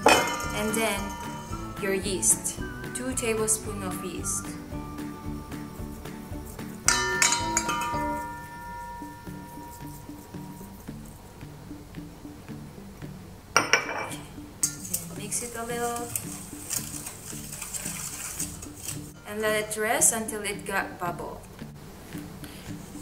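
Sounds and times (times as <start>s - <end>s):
dish striking metal bowl: 0.0s - 1.8s, 6.9s - 10.8s, 13.6s - 14.9s
whisk clinking and scraping bowl: 0.0s - 2.6s, 6.1s - 11.1s, 14.6s - 19.2s
metal bowl ringing: 0.0s - 3.5s, 6.9s - 10.9s, 13.6s - 15.0s
background music: 0.0s - 23.0s.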